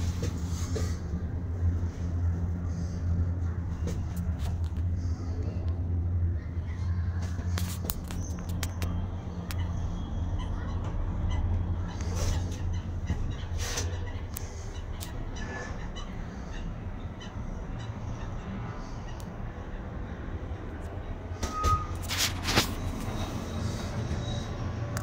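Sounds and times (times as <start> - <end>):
cable car gondola humming: 0.0 - 25.0.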